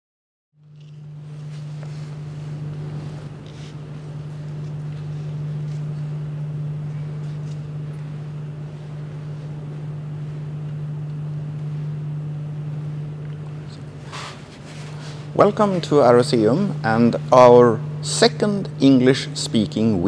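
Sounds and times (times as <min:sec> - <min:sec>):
low mechanical hum: 0:00.6 - 0:20.0.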